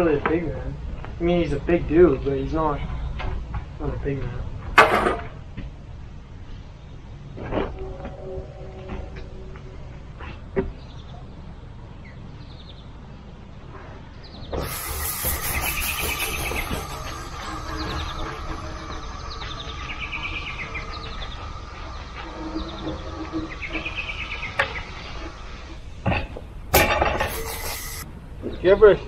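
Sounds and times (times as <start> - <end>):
broom swishing on wet concrete: 14.6 - 18.2.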